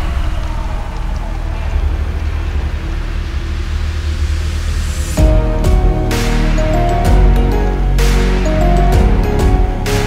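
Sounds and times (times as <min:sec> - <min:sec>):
deep sub-bass rumble pulsing: 0:00.0 - 0:09.8.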